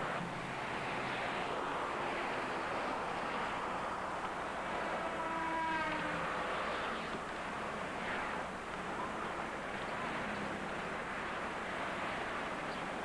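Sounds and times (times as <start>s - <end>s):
steady traffic noise: 0.0s - 13.0s.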